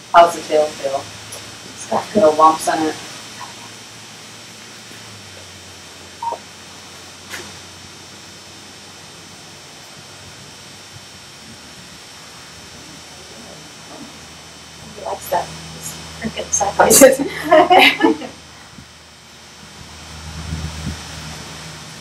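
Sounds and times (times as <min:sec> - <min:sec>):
voices: 0:00.0 - 0:03.9, 0:11.4 - 0:18.4
steady low hum: 0:00.0 - 0:22.0.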